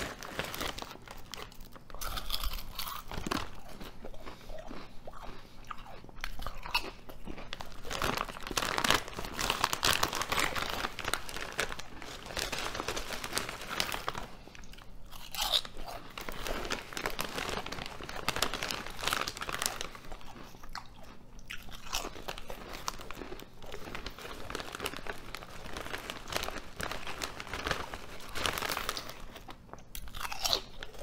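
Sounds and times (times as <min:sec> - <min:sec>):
crunching and chewing potato chips: 0:00.0 - 0:31.0.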